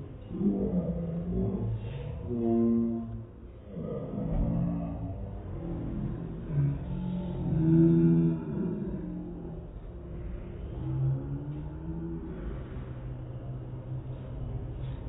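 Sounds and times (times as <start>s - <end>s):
muffled low voice sounds: 0.0s - 15.0s.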